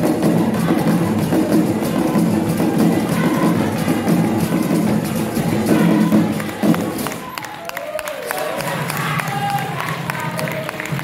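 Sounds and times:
drum ensemble playing: 0:00.0 - 0:07.4.

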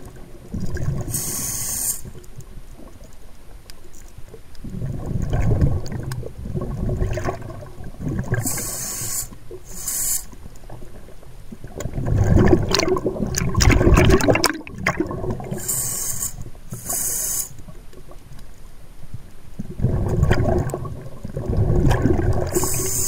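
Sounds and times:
underwater sloshing and bubbling: 0:00.0 - 0:23.0
short hissing bursts: 0:01.0 - 0:02.2, 0:08.4 - 0:10.4, 0:15.5 - 0:17.6, 0:22.5 - 0:23.0.

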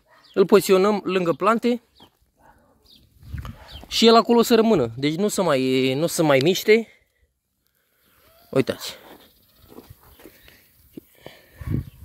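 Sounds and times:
footsteps on soil: 0:08.9 - 0:11.6.

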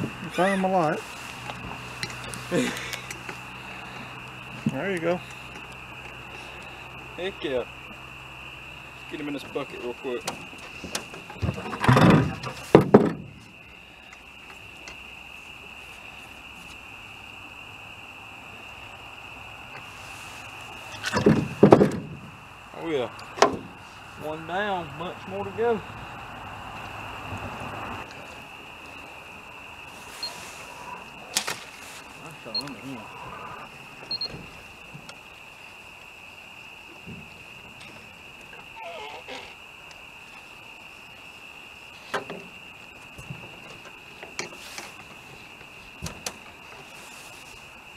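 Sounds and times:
night insects droning: 0:00.0 - 0:47.9
knocks and clatter in boat: 0:10.2 - 0:13.5, 0:21.1 - 0:22.3
high-pitched night chorus: 0:22.3 - 0:37.9.

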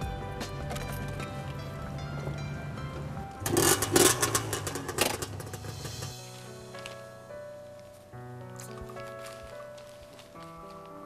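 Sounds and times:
music: 0:00.0 - 0:11.0
motorbike engine revving: 0:03.4 - 0:06.2.

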